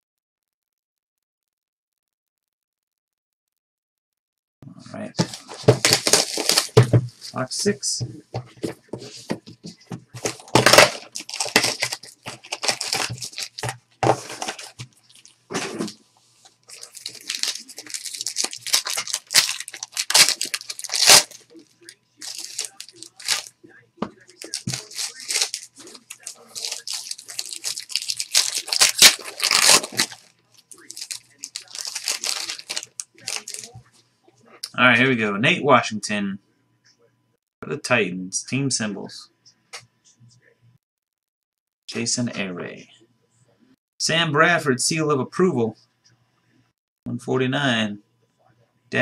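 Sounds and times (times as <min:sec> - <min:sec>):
plastic wrapping tearing and crinkling: 0:05.2 - 0:06.8, 0:10.2 - 0:16.0, 0:16.7 - 0:21.6, 0:22.2 - 0:23.5, 0:24.2 - 0:33.7.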